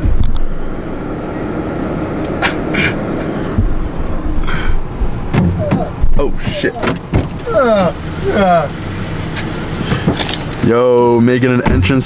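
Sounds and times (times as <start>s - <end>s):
road and engine rumble: 0.0s - 12.0s.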